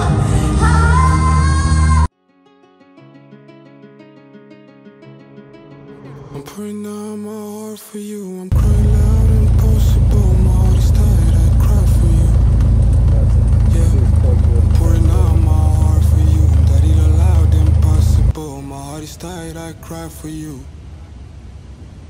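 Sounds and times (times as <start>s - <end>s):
music: 0.0s - 7.2s
plane engine and propeller drone: 8.5s - 18.3s.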